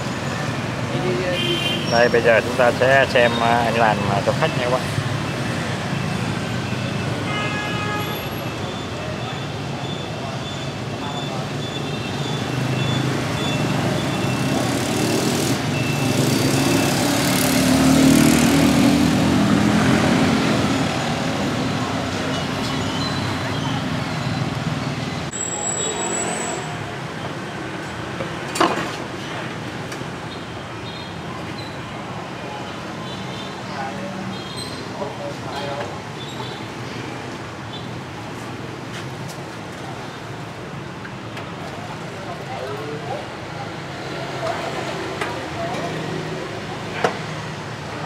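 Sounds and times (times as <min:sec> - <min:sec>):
street traffic noise: 0:00.0 - 0:48.0
vehicle passing close: 0:14.4 - 0:21.8.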